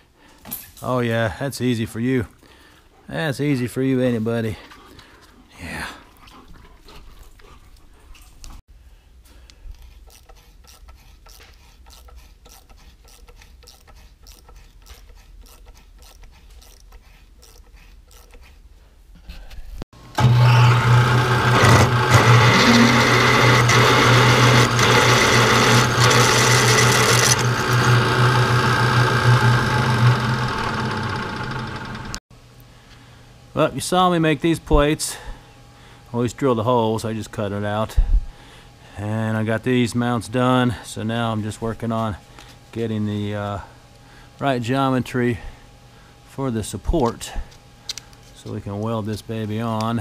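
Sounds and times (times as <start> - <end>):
drill press motor hum: 20.0 - 32.2
drill cutting through steel: 20.1 - 32.2.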